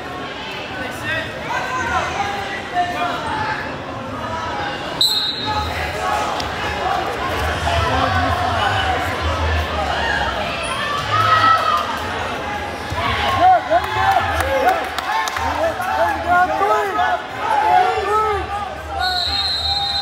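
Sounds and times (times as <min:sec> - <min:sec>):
crowd and coaches shouting: 0:05.2 - 0:20.0.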